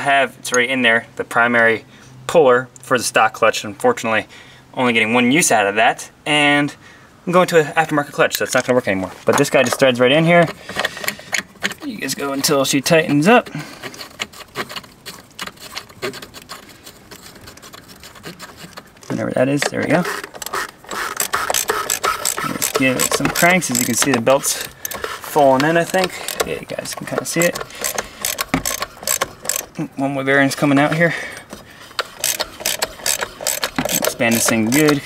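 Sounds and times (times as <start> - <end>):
light metal clicks and scrapes: 8.4 - 35.0.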